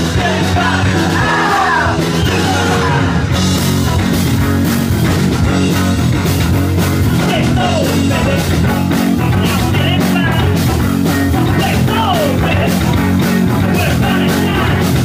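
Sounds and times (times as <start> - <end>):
live punk rock band: 0.0 - 15.0.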